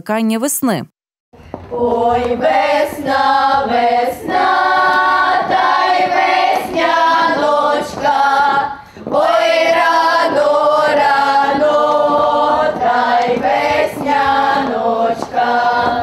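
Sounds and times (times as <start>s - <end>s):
girls' folk choir singing: 1.6s - 16.0s.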